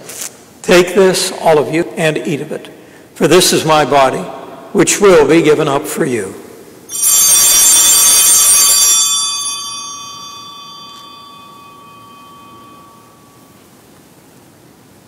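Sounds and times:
altar bells ringing: 6.9s - 14.6s.

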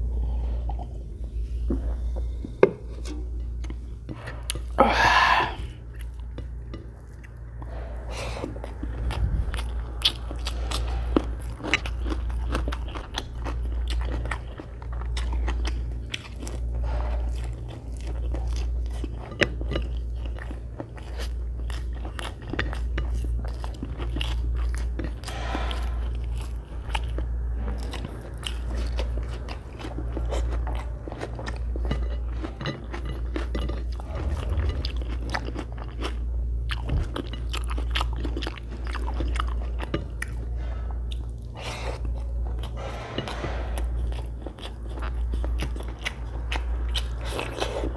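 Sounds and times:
close chewing with mouth smacks: 5.8s - 47.9s.

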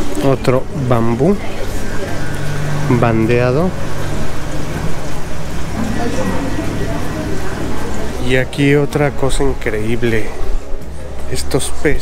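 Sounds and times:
constant low hum: 0.0s - 12.0s
faint voices: 0.0s - 12.0s.

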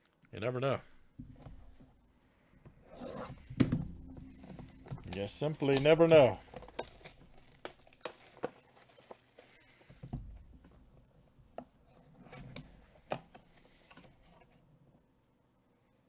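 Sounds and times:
plastic wrap crinkling and tearing: 4.8s - 10.0s.

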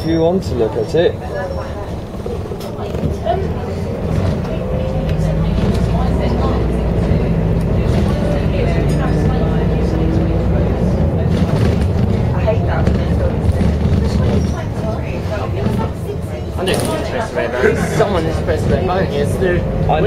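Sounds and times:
bus diesel engine: 0.0s - 20.0s
road rumble: 0.0s - 20.0s.

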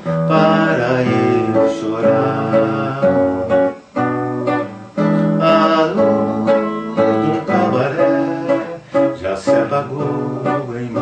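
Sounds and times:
acoustic guitar tango: 0.0s - 11.0s.

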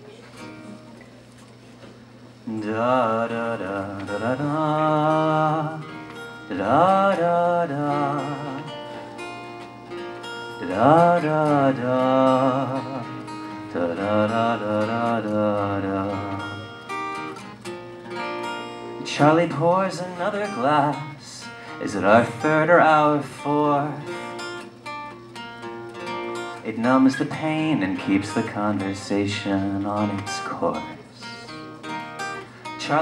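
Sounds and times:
acoustic guitar strummed softly: 0.0s - 33.0s.

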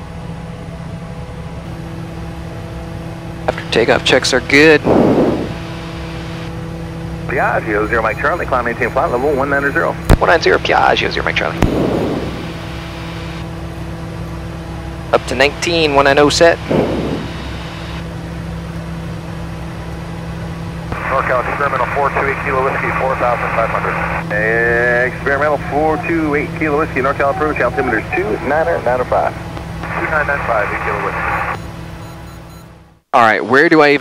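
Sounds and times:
turboprop cockpit drone: 0.0s - 33.1s
airflow rushing: 4.8s - 6.2s, 11.6s - 13.4s, 16.5s - 18.0s.

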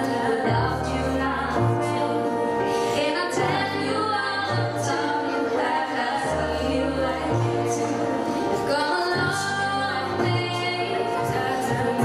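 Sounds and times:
women singing pop song: 0.0s - 12.0s.

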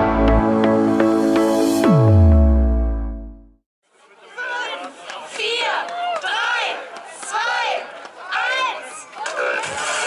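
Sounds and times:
electronic music: 0.0s - 3.6s
crowd chattering: 3.9s - 10.0s.

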